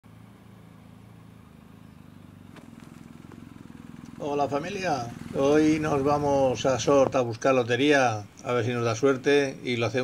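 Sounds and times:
motorcycle engine idling: 0.1 - 10.0.

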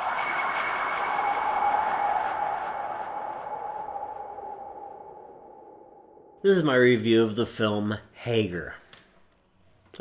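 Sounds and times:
whooshing drone with tones: 0.0 - 6.4.

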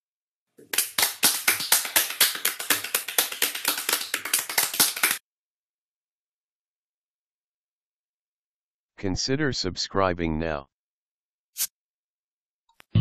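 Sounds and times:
quick irregular hand claps: 0.6 - 5.2.

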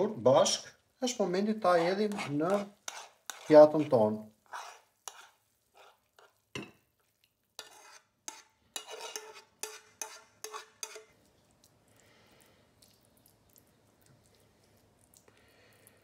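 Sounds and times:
metal spoon scraping pan: 1.6 - 6.7, 7.6 - 11.2.

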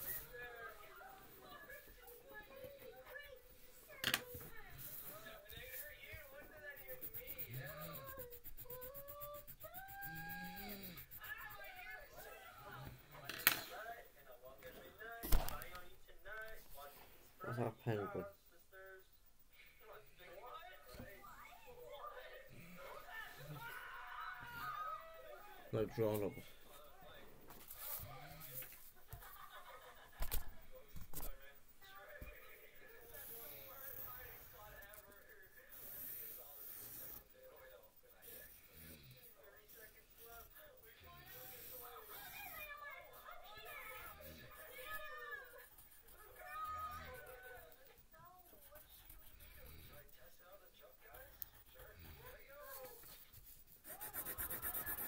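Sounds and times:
pencil scratching on card: 4.8 - 12.4, 43.7 - 50.1, 51.1 - 55.0.

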